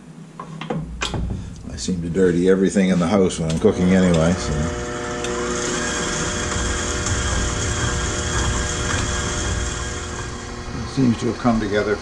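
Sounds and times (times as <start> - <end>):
stand mixer motor humming: 3.6 - 12.0.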